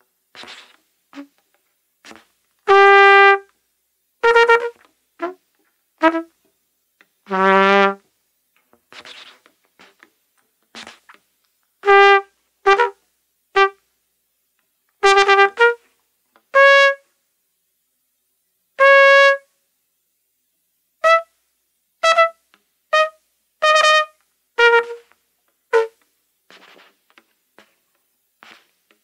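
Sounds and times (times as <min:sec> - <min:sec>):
solo trumpet playing: 0:02.1 - 0:03.5, 0:04.2 - 0:05.4, 0:06.0 - 0:06.3, 0:07.3 - 0:08.0, 0:11.8 - 0:13.0, 0:13.6 - 0:13.8, 0:15.0 - 0:15.8, 0:16.5 - 0:17.1, 0:18.8 - 0:19.5, 0:21.0 - 0:21.3, 0:22.0 - 0:25.1, 0:25.7 - 0:26.0.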